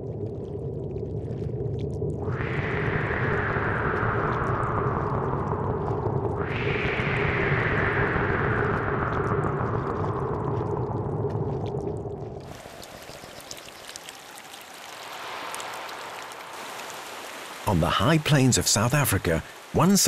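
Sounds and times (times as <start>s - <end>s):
low steady drone: 0.0s - 14.5s.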